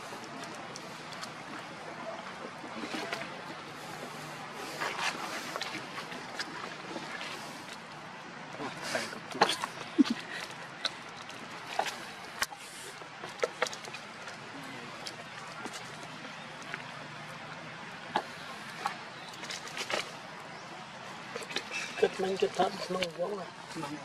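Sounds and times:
steady outdoor hiss: 0.0s - 24.0s.

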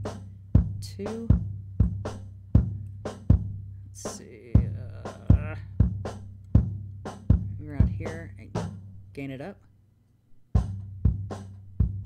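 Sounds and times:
kick drum hits: 1.4s - 3.6s, 5.4s - 8.0s.

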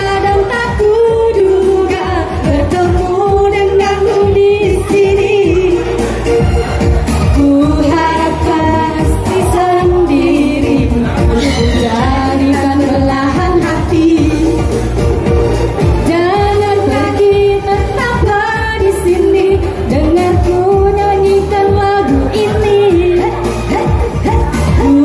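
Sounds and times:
women singing pop song: 0.0s - 6.5s, 7.2s - 25.0s
backing music: 0.0s - 25.0s.

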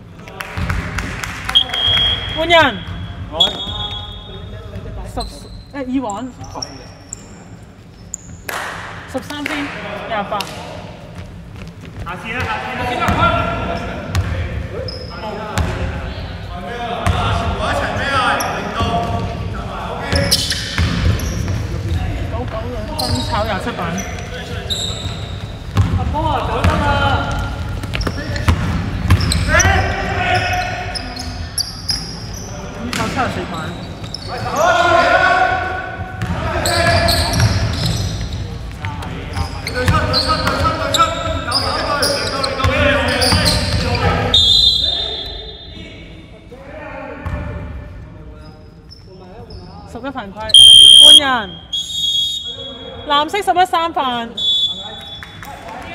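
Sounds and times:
referee whistle: 1.5s - 4.5s, 44.3s - 45.7s, 50.5s - 53.1s, 54.4s - 55.4s
basketball bouncing on hardwood: 25.8s - 26.8s
players calling out: 50.5s - 53.2s.

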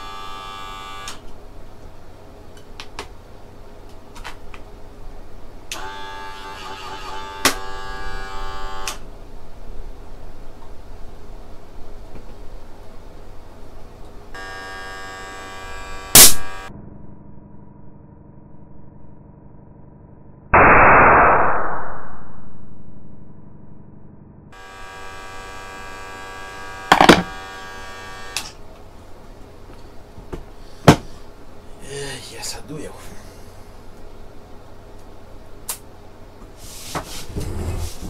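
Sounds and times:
electric air compressor humming: 14.4s - 16.7s, 24.6s - 28.6s
condom bursting with a bang: 20.6s - 22.3s.

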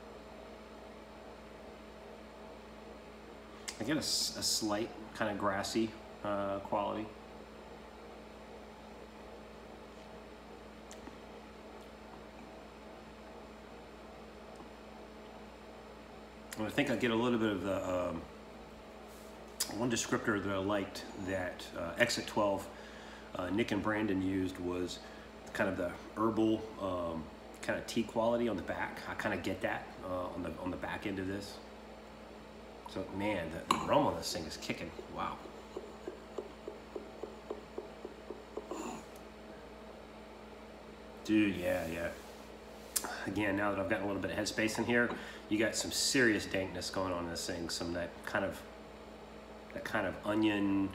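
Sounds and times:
low electrical hum: 0.0s - 50.9s.

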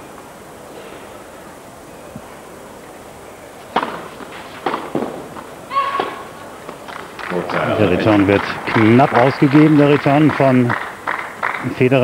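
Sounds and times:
tennis racket hitting ball: 3.7s - 7.1s
person shouting: 5.7s - 6.2s.

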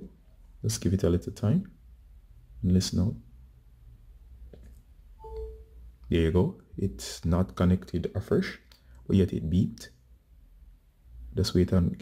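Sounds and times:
two-note charging chime: 5.2s - 5.8s.

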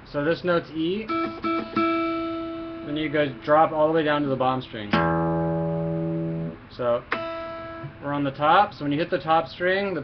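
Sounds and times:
acoustic guitar plucking: 1.0s - 8.2s.

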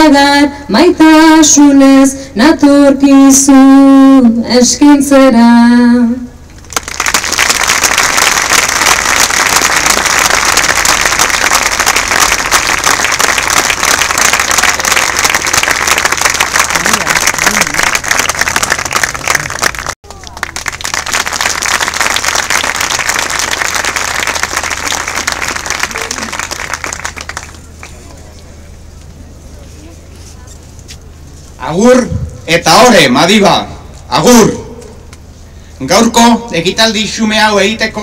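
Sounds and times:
large crowd applauding: 6.7s - 28.2s.

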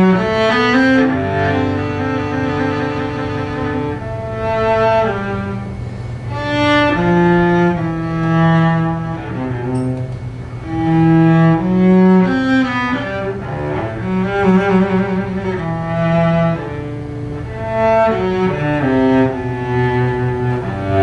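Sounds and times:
bowed cello: 0.0s - 21.0s.

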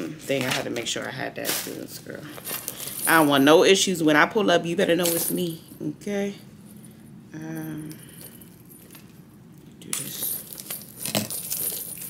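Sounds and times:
metal chain strap clinking: 0.0s - 3.8s, 4.8s - 5.8s, 6.6s - 12.0s.

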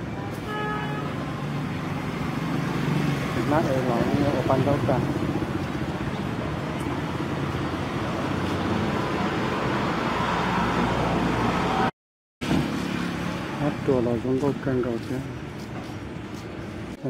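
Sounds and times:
motor traffic: 0.0s - 17.0s.

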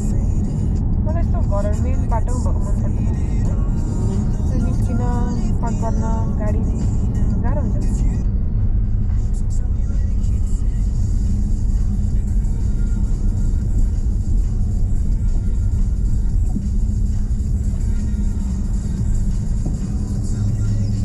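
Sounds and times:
car engine and tyres rumbling: 0.0s - 21.0s
music playing in background: 0.0s - 21.0s.

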